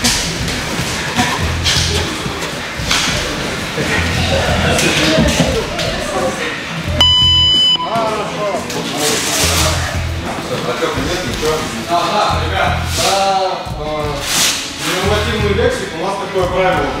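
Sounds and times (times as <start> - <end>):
timer buzzer beep: 7.0 - 8.0.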